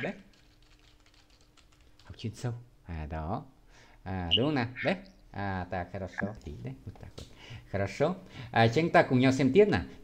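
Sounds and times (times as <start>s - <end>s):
typing on computer keyboard: 0.0s - 2.2s.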